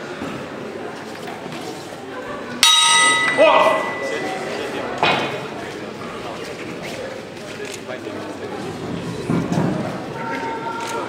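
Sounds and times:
crowd chatter: 0.0 - 11.0
boxing ring bell clanging: 2.6 - 4.9.

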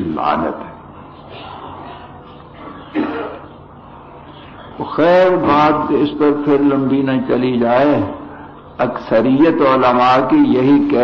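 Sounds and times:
man clearing his throat: 2.6 - 3.5.

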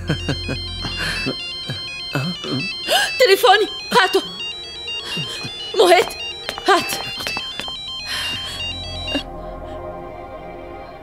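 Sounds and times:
mobile phone ringtone: 0.0 - 9.3
soft dramatic music: 0.0 - 11.0.

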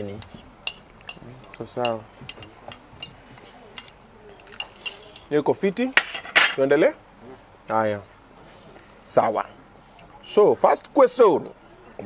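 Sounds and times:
cutlery clinking on plates: 0.0 - 5.3, 5.9 - 6.7
cutlery scraping squeaks: 3.4 - 5.3.

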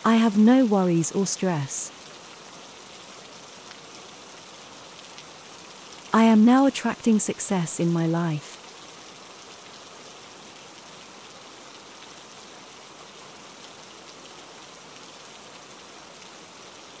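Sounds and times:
steady rain: 0.0 - 17.0.

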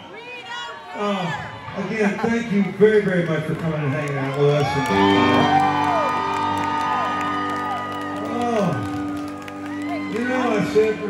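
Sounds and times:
live band playing softly: 4.8 - 11.0
electric guitar note bends: 4.9 - 6.0.

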